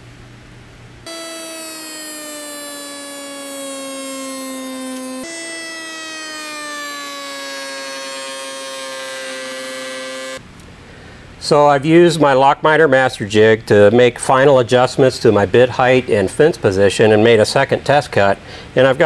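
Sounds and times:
router whining through cut: 0:01.1 - 0:10.4.

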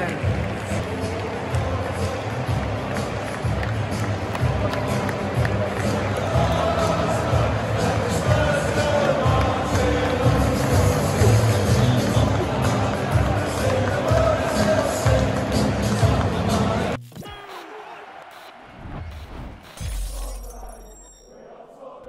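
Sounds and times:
music playing: 0:00.0 - 0:17.4
stadium crowd cheering: 0:00.0 - 0:19.8.

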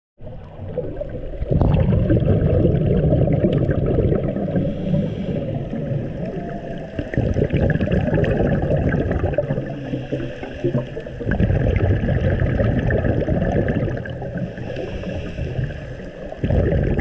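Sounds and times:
muffled underwater water rush: 0:00.2 - 0:17.0.

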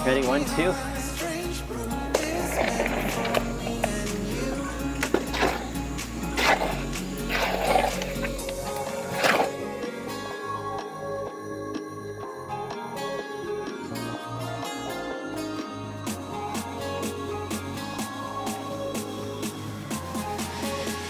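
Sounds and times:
background music: 0:00.0 - 0:21.0
wet concrete scraping and slopping: 0:02.2 - 0:04.0, 0:05.0 - 0:09.6.

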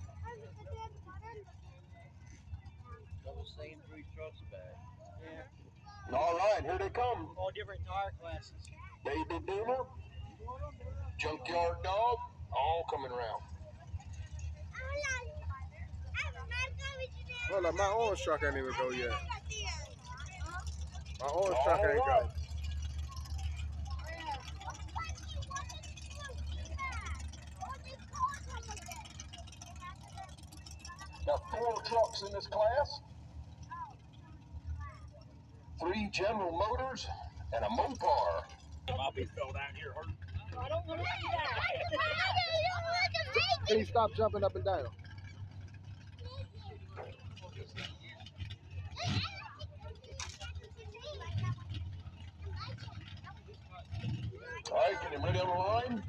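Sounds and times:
truck engines idling: 0:00.0 - 0:56.0.

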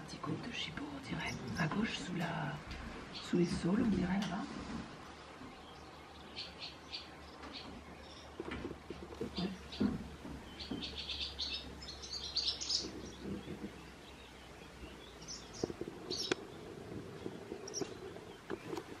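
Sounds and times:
swallows chirping: 0:05.1 - 0:19.0
soft low thumps: 0:07.4 - 0:12.2.

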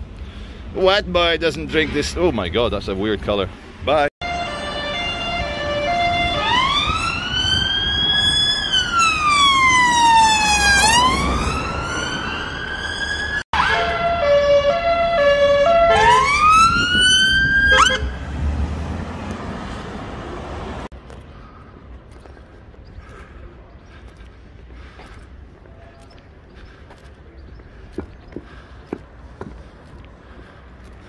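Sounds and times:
low traffic rumble: 0:00.0 - 0:31.0
emergency vehicle siren: 0:04.2 - 0:19.2.

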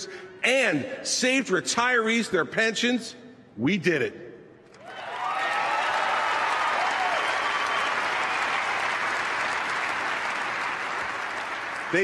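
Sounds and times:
voices cheering: 0:04.8 - 0:11.0
crowd applauding: 0:04.8 - 0:12.0.

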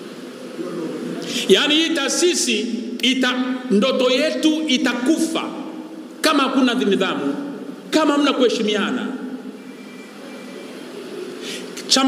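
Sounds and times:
hall background noise: 0:00.0 - 0:12.0
faint thin high tone: 0:09.6 - 0:11.0.

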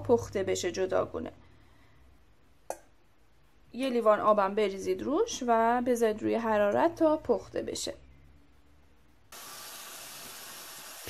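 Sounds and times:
onions sizzling in a pot: 0:09.3 - 0:11.0.

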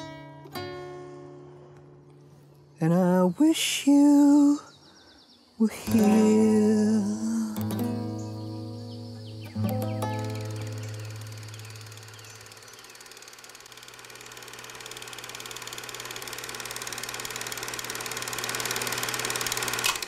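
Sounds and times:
guitar chord ringing: 0:00.0 - 0:02.7, 0:05.9 - 0:12.4
fast mechanical clatter: 0:10.3 - 0:20.0.

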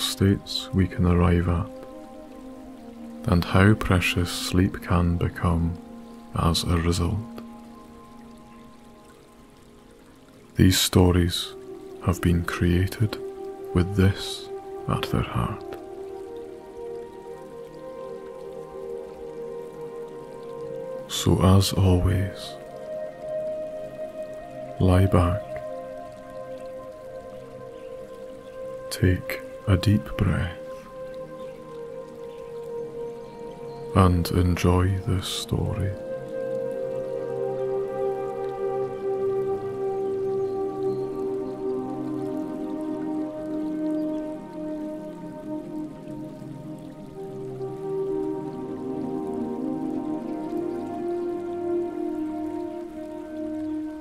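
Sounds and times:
soft ambient music: 0:00.0 - 0:54.0
stream running water: 0:00.0 - 0:54.0.

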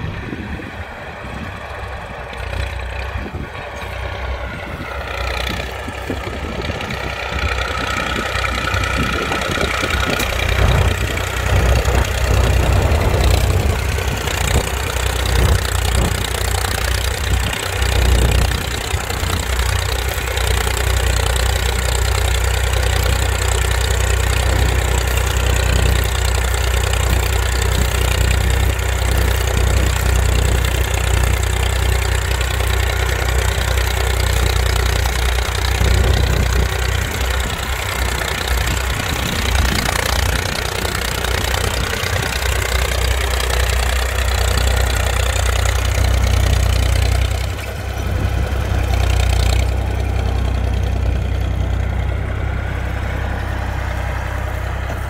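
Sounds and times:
tractor diesel engine running: 0:00.0 - 0:55.0.

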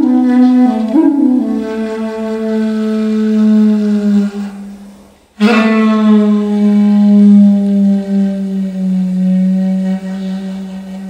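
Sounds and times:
wind instrument low steady note: 0:00.0 - 0:11.0.

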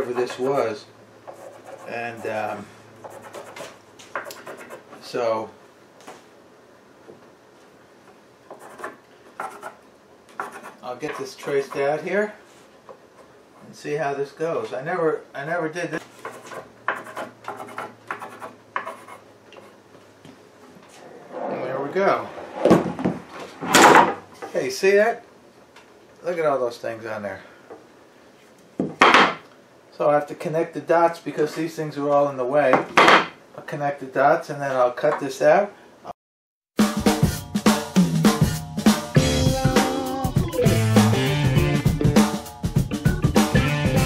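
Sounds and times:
pencil scratching on wood: 0:01.3 - 0:02.4, 0:03.0 - 0:04.9, 0:08.5 - 0:12.0, 0:16.2 - 0:19.8
wooden knock and clatter: 0:28.8 - 0:29.4, 0:32.7 - 0:33.4.

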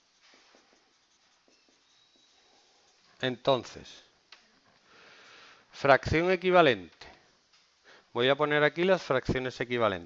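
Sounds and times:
marker writing on whiteboard: 0:00.0 - 0:03.8.

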